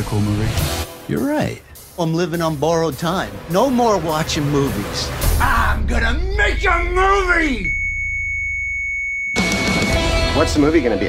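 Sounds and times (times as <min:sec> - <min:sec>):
high-pitched electronic tone: 0:06.0 - 0:10.2.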